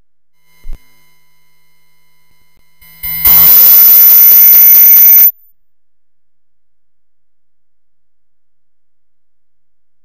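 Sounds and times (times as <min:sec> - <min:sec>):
high steady ringing tone: 0:00.4 - 0:05.5.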